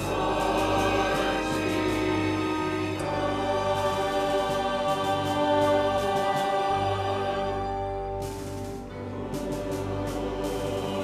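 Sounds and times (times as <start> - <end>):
church choir singing: 0.0 - 11.0.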